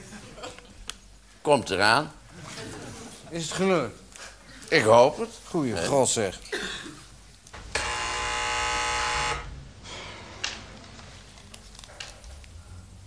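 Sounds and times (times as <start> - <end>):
electric door buzzer: 7.6 - 9.6.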